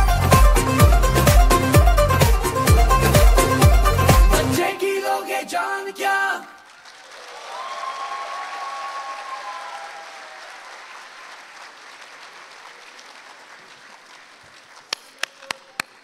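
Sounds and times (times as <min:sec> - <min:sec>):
audience applauding: 0:06.6 - 0:16.0
person cheering: 0:07.3 - 0:10.6.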